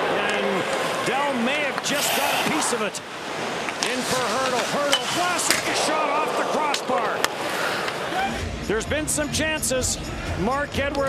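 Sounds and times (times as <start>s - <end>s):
commentator speaking: 0.0s - 3.1s, 3.8s - 7.3s
crowd noise: 0.0s - 10.9s.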